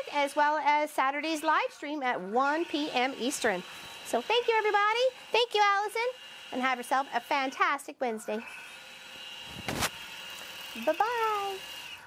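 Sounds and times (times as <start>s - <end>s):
quilting machine whining: 0.0s - 12.0s.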